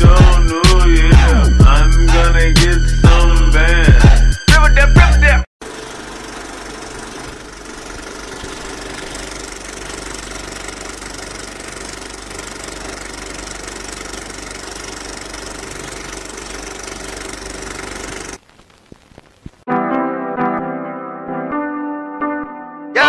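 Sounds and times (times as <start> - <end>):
engine-like running noise: 5.6 - 18.4.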